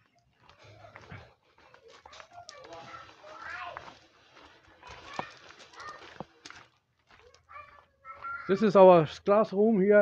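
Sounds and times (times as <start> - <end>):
footsteps on garden path: 0.0 - 9.5.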